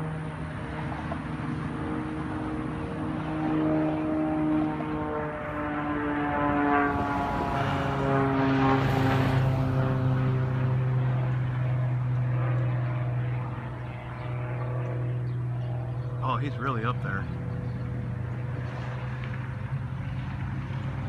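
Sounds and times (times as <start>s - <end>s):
distant airplane engine droning: 0.0s - 21.0s
steady low hum: 0.0s - 21.0s.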